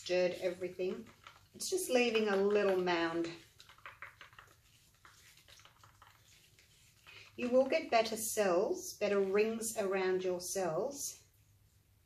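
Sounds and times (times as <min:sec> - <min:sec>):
wooden stick stirring paint in cup: 0:00.0 - 0:09.9.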